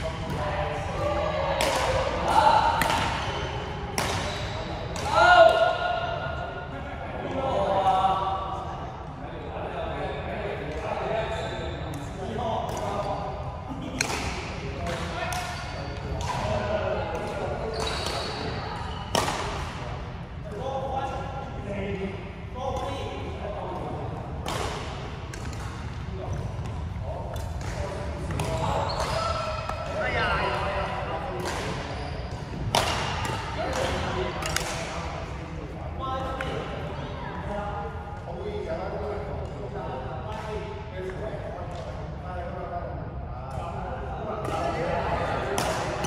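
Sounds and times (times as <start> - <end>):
murmur of voices: 0.0 - 46.0
racket striking shuttlecock: 32.7 - 34.8.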